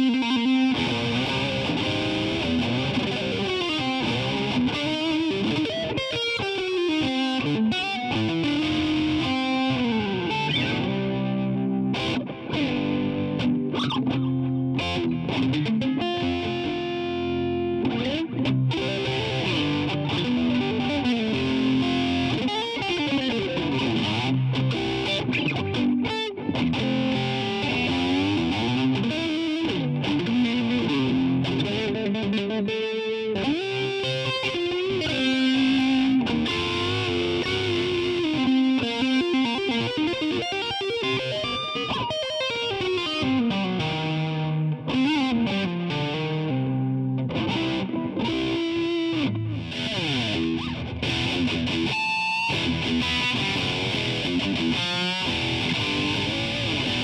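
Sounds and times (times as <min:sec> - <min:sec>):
distorted electric guitar lead: 0:00.0 - 0:57.0.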